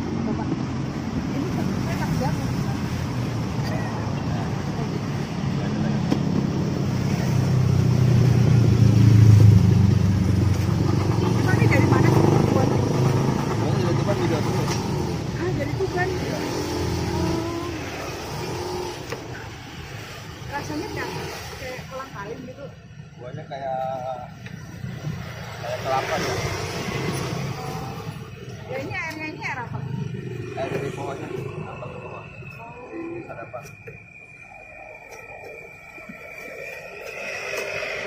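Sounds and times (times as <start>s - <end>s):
vehicle engine passing by: 0.0s - 22.4s, 24.9s - 28.9s, 29.6s - 32.6s
voices: 0.0s - 38.0s.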